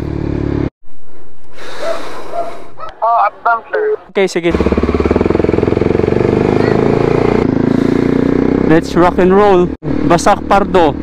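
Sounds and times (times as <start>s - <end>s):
motorcycle engine running: 0.0s - 0.7s, 4.4s - 11.0s.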